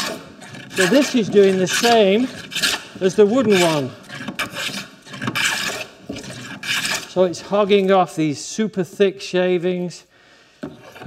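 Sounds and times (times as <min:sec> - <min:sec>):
hand plane cutting wood: 0:00.0 - 0:07.9, 0:10.6 - 0:11.0.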